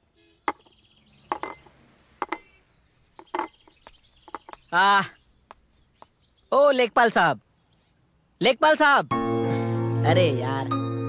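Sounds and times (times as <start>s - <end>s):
faint bird chirps: 0.0s - 9.0s.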